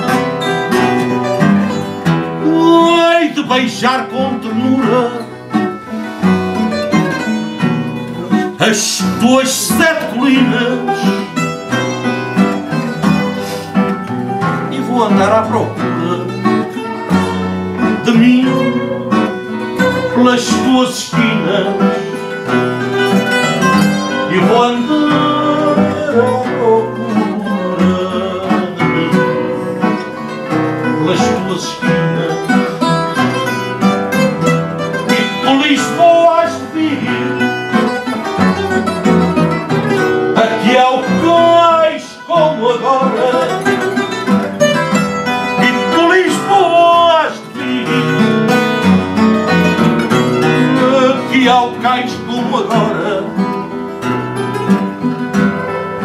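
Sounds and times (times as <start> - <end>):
bass guitar: 0.0 - 56.0
classical guitars: 0.0 - 56.0
plucked guitar melody: 0.0 - 56.0.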